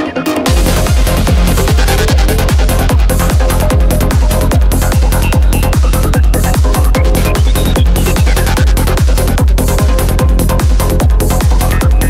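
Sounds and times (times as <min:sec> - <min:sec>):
low bassline: 0:00.0 - 0:12.0
trance music: 0:00.0 - 0:12.0
kick drum: 0:00.5 - 0:12.0.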